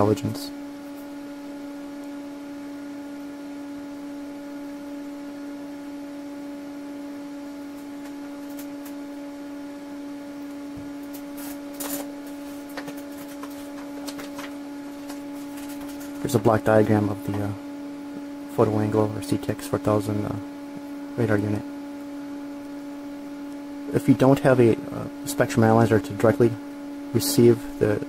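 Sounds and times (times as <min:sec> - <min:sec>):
electrical hum: 0:00.0 - 0:28.0.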